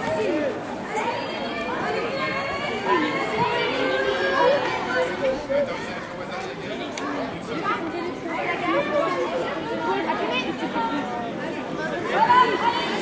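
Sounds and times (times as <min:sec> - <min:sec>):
spectators chattering: 0:00.0 - 0:13.0.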